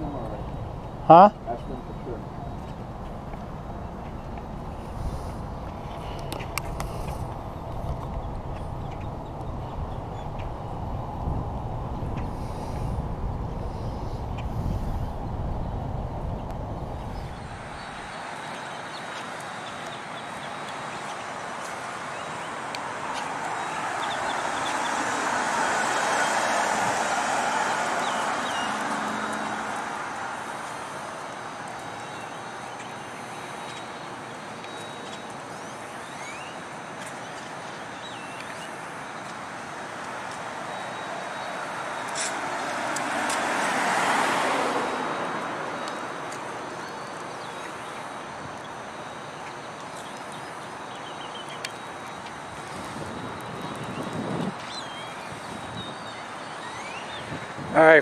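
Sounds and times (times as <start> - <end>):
cars passing with tyre noise: 0.0 - 58.0.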